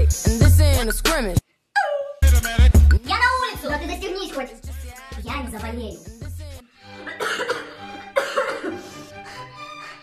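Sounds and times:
woman coughing hard: 7.1s - 8.9s.

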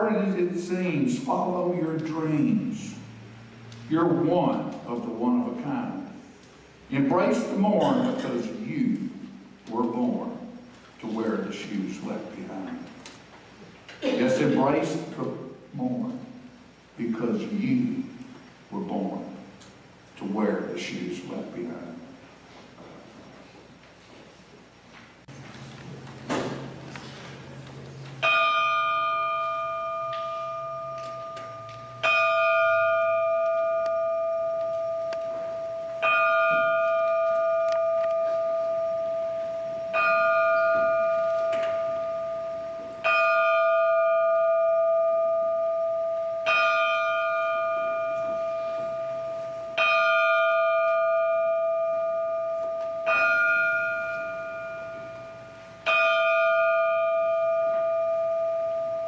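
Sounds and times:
large brass bell tolling: 28.2s - 59.0s.

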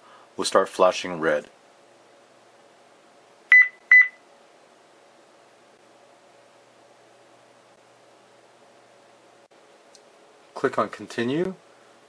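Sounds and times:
short electronic beeps: 3.5s - 4.2s.

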